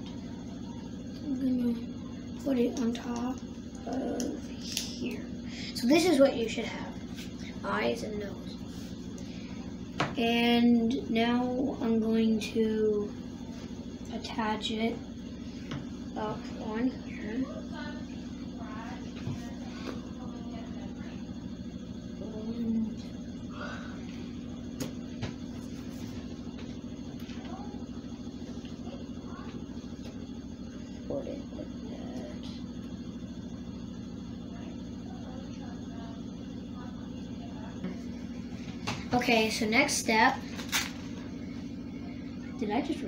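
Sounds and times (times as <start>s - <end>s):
clothes dryer running: 0.0s - 43.0s.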